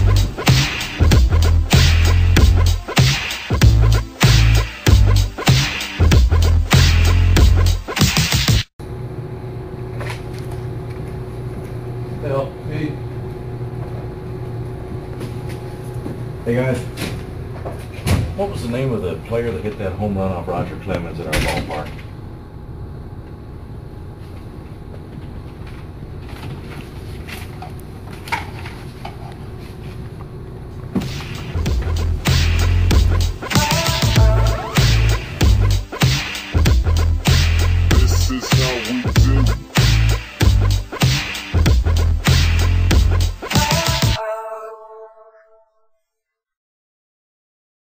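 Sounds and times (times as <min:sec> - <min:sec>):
music with heavy bass beat: 0:00.0 - 0:08.7, 0:31.0 - 0:44.2.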